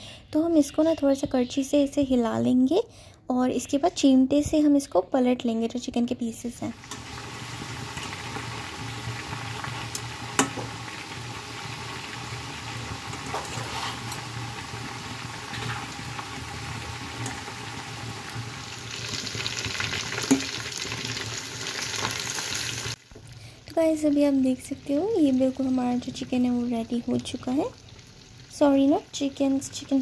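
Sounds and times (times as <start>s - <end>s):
oil sizzling and bubbling: 6.7s - 30.0s.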